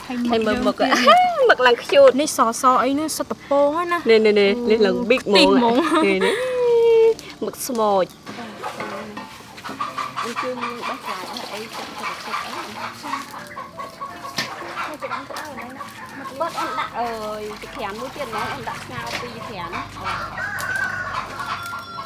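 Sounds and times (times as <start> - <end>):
chickens clucking: 7.8 - 22.0.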